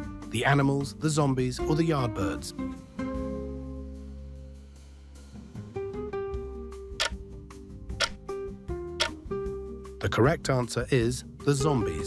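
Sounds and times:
sharp clock ticks: 0:09.0 - 0:09.2.

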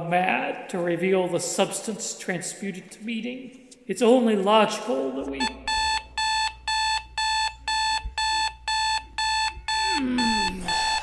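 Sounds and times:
alarm clock beeping: 0:05.4 - 0:11.0.

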